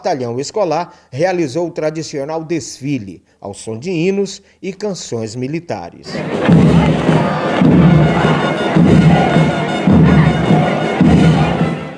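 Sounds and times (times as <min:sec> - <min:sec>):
crowd noise: 0:06.0 - 0:11.9
band playing a march: 0:06.1 - 0:11.9.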